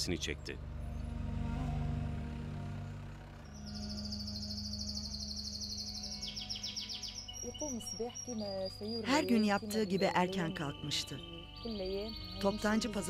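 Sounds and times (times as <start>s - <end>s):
low background music: 0.0s - 13.0s
lower bird trill: 0.8s - 13.0s
songbird trilling: 3.4s - 13.0s.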